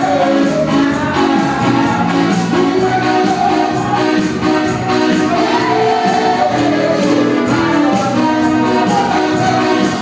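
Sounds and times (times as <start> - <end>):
choir singing gospel through speakers: 0.0 - 10.0
steady beat: 0.0 - 10.0.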